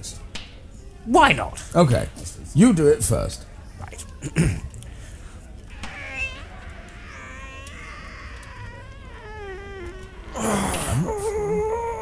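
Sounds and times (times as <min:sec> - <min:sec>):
man straining groan: 0:07.7 - 0:12.0.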